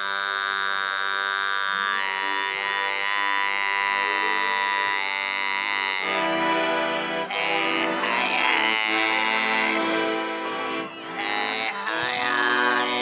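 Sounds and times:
throat singing drone: 0.0s - 13.0s.

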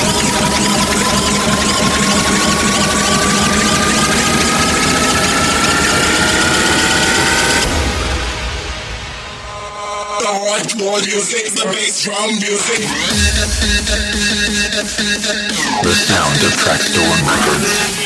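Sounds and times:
distorted noise wall: 15.6s - 18.0s.

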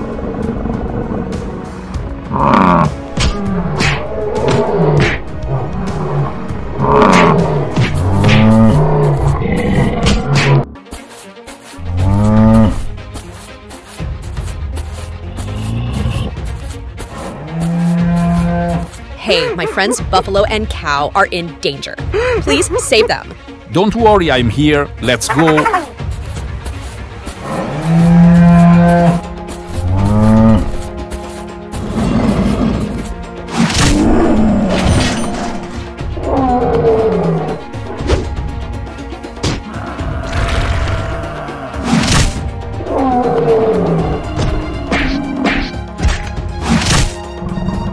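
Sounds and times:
background music with steady beat: 1.3s - 34.7s
rough growling calls: 27.3s - 30.8s
cow mooing: 27.4s - 29.2s, 29.8s - 30.9s.

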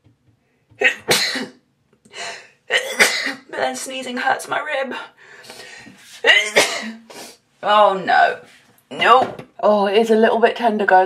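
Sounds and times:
woman coughing: 0.8s - 1.6s, 2.7s - 3.6s, 6.3s - 7.0s.

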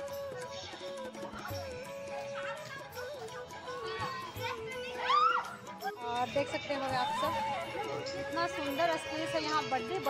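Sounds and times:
background music with held notes: 0.0s - 10.0s
child's high-pitched shout: 0.3s - 5.7s.

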